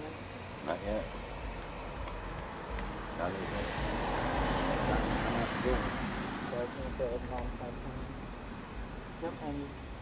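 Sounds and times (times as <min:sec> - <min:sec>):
car passing: 0:00.0 - 0:10.0
insect chirps: 0:00.0 - 0:10.0.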